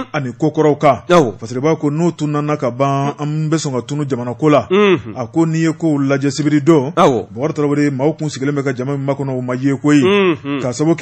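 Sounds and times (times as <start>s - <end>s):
man chanting: 10.0s - 10.8s.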